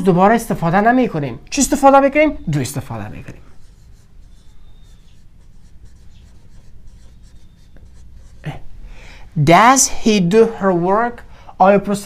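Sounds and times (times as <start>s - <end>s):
marker tip squeak: 2.4s - 8.4s
marker writing on whiteboard: 2.8s - 8.6s.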